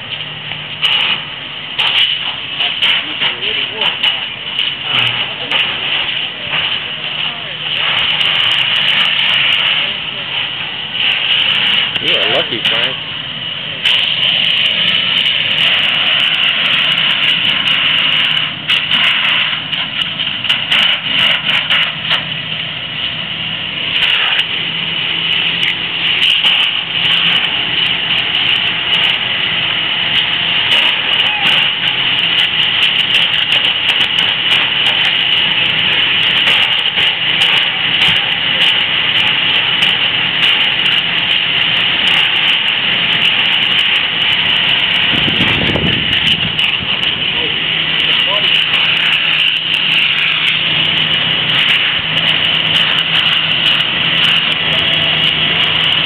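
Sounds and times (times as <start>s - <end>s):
engine running: 0.0s - 56.0s
high steady whine: 0.0s - 56.0s
sharp crackles and clicks: 0.0s - 56.0s.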